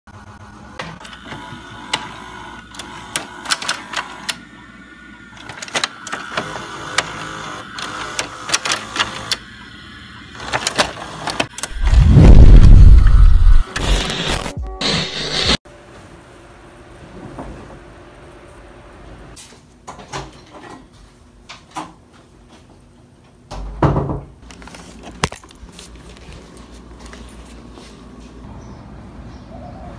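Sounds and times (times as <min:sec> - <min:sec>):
mechanical whirring: 0:00.1 - 0:15.6
noisy bursts: 0:02.2 - 0:15.6
loud deep rumble: 0:11.7 - 0:13.6
music: 0:13.7 - 0:15.6.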